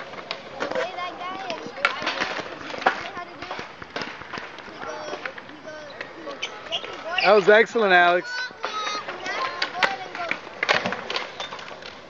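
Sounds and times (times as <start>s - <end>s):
skateboards clacking on concrete: 0.0s - 12.0s
children chattering and calling: 0.4s - 11.4s.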